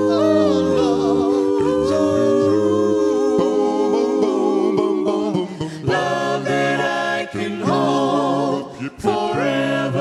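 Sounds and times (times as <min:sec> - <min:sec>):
group singing hummed harmony: 0:00.0 - 0:10.0.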